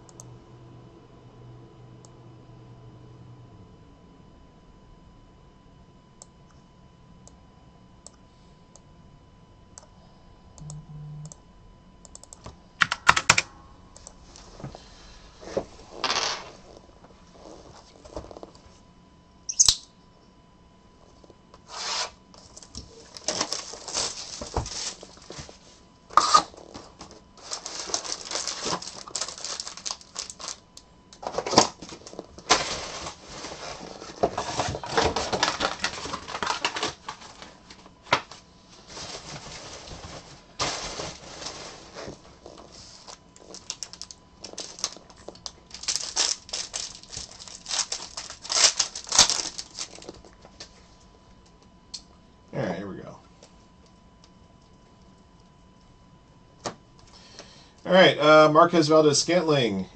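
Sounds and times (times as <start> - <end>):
foil packs crinkling and rustling: 21.7 - 50.7.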